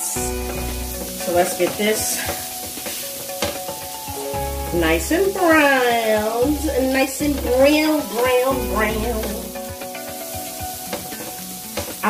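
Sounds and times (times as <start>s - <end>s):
food sizzling in a pan: 0.0s - 12.0s
tongs clicking and scraping pan: 0.3s - 12.0s.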